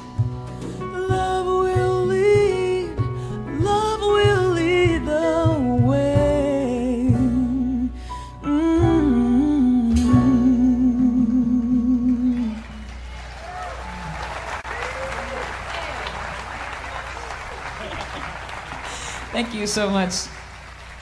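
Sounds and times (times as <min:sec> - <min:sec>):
woman singing with vibrato: 0:00.9 - 0:12.8
band playing: 0:08.5 - 0:21.0
audience applause: 0:12.3 - 0:21.0
audience cheering: 0:12.3 - 0:21.0.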